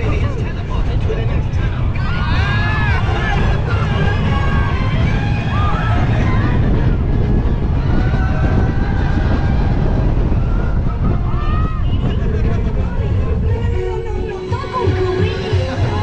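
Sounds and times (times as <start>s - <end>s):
roller coaster wind and track rumble: 0.0s - 16.0s
riders screaming: 1.9s - 12.3s.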